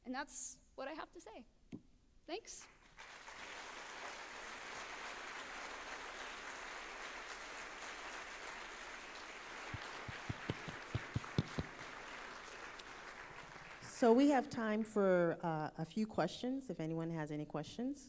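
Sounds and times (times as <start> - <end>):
audience applauding: 2.8 - 14.3.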